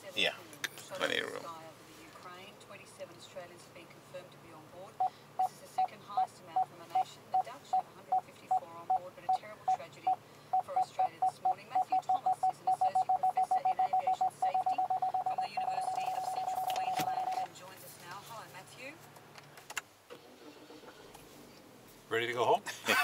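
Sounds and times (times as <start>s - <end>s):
parking sensor beeping: 6.6s - 17.5s.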